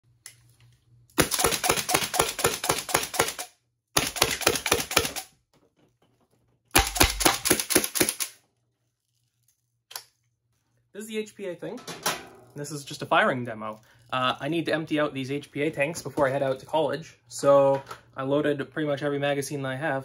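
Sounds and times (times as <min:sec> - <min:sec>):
air-powered toy blaster firing bursts: 0:01.2 - 0:05.2, 0:06.8 - 0:08.3.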